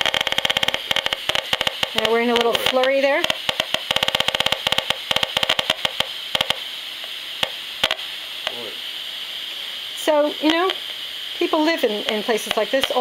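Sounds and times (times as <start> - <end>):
rapid crackling clicks from speaker: 0.0 - 8.7, 10.4 - 13.0
steady hiss: 0.0 - 13.0.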